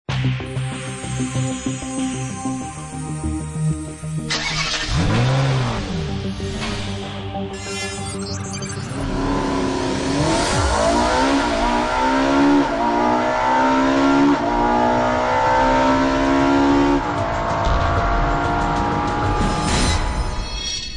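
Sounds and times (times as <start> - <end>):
car engine accelerating hard: 4.3 - 6.6, 9.0 - 19.7.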